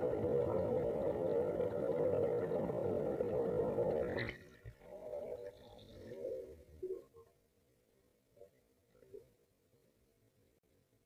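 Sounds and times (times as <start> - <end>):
muffled underwater noise: 0.0 - 7.4.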